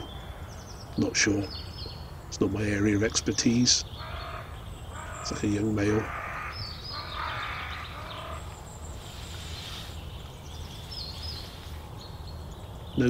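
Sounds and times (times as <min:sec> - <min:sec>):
high bird chirps: 0:00.0 - 0:13.0.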